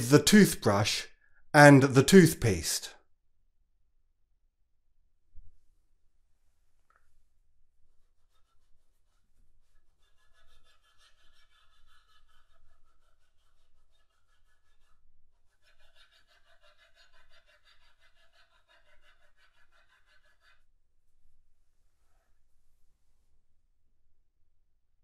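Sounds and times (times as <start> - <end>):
toothbrush scrubbing paper: 7.9 - 15.0.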